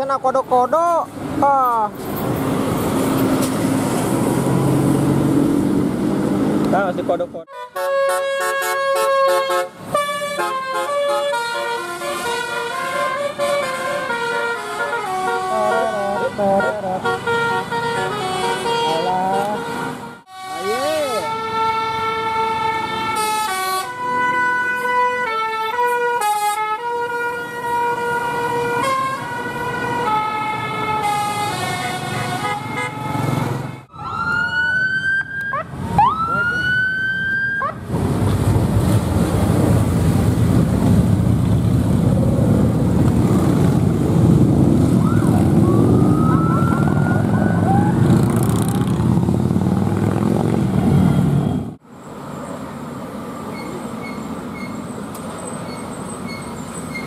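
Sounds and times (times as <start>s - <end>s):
vehicle passing close: 2.0s - 7.2s, 37.8s - 54.5s
bus musical horn tune: 7.5s - 33.8s
rising siren-like whoops: 33.9s - 37.8s, 44.9s - 48.3s.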